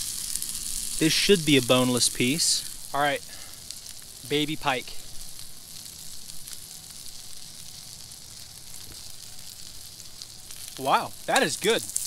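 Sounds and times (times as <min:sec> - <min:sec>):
frying pan sizzling: 0:00.0 - 0:12.0.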